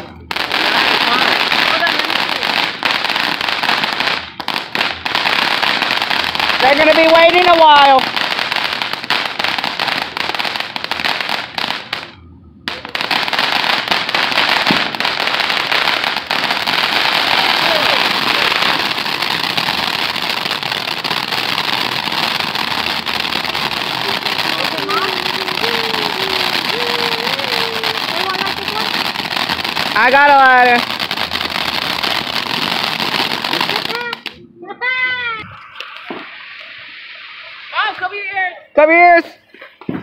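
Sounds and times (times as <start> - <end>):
fireworks hissing crackle: 0.0 - 40.0.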